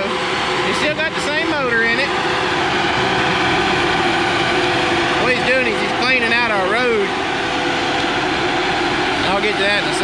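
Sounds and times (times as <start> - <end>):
diesel engine under load: 0.0 - 10.0
steady droning tone: 0.0 - 10.0.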